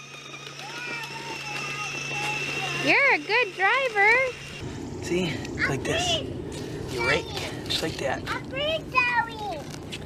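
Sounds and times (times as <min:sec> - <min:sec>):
electric motor humming and whining: 0:00.0 - 0:05.6.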